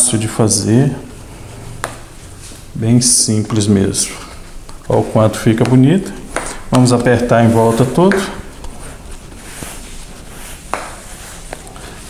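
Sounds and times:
hands pressing dough in a pan: 0:09.3 - 0:12.0.

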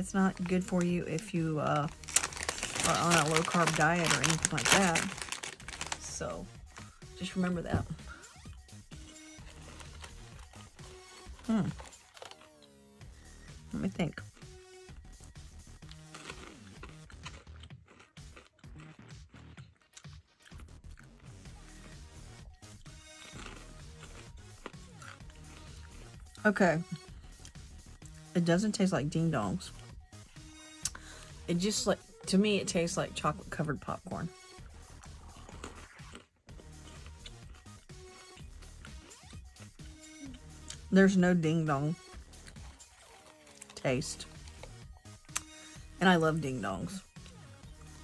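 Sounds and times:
quiet background music: 0:00.0 - 0:48.0
person crunching popcorn: 0:00.1 - 0:12.9, 0:15.2 - 0:26.3, 0:34.6 - 0:40.9, 0:42.1 - 0:45.7.

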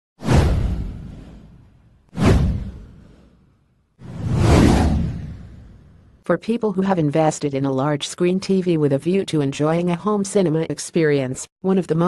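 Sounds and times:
whoosh: 0:00.2 - 0:06.2.

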